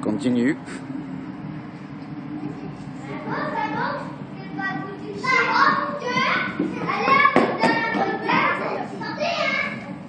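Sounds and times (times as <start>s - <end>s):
children chattering and calling out: 2.2s - 10.0s.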